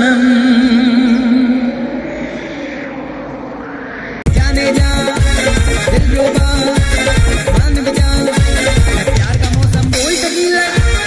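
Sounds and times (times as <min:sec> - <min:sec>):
faint rising tone: 0:00.2 - 0:05.2
whooshing rush of noise: 0:01.1 - 0:06.0.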